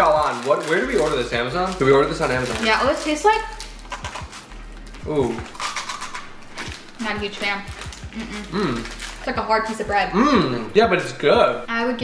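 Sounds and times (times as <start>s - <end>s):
crunching and chewing rusk: 7.7s - 9.3s.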